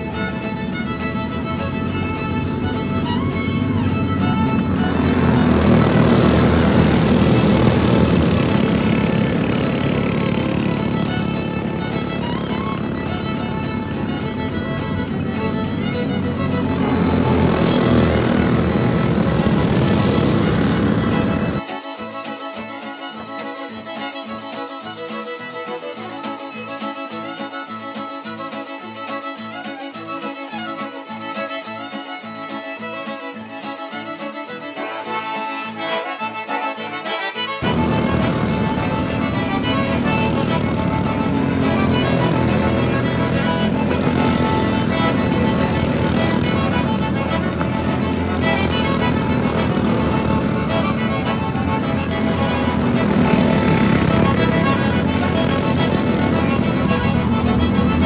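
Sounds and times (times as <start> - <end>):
go-kart engines racing: 0.0 - 21.7, 37.6 - 58.0
fiddle music: 0.0 - 58.0.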